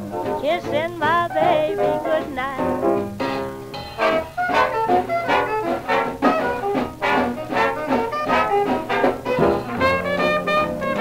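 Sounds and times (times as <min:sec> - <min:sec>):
swing dance band brass: 0:00.0 - 0:11.0
singing voice: 0:00.4 - 0:02.8.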